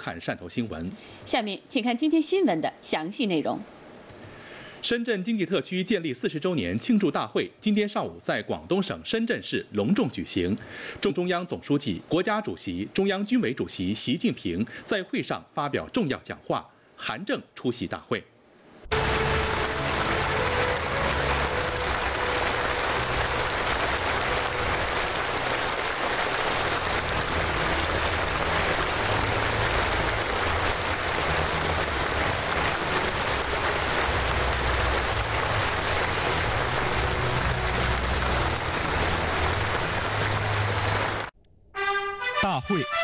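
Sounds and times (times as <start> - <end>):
audience applause: 18.9 - 41.3.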